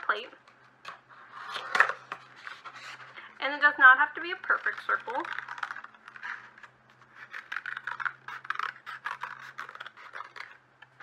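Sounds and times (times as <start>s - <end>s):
scissors cutting paper plate: 4.2s - 10.6s.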